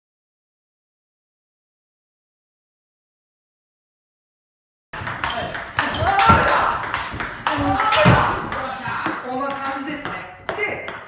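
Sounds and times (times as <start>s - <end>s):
table tennis ball clicking: 5.0s - 11.0s
voices: 5.0s - 11.0s.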